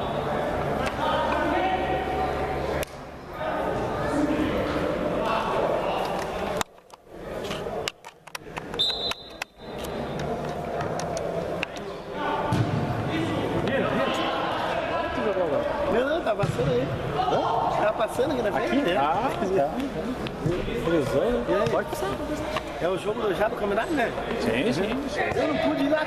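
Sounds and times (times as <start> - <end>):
football thuds echoing: 12.4 - 13.9, 16.3 - 17.2.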